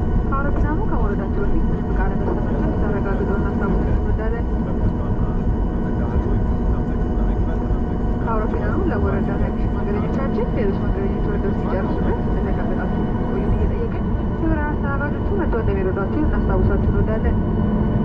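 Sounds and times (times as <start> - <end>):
airplane cabin rumble: 0.0 - 18.0
passengers talking: 0.0 - 18.0.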